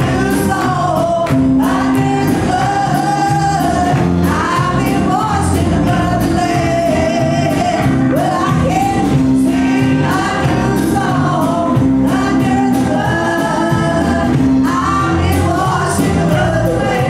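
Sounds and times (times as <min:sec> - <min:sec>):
band with drums: 0:00.0 - 0:17.0
group singing gospel song: 0:00.0 - 0:17.0.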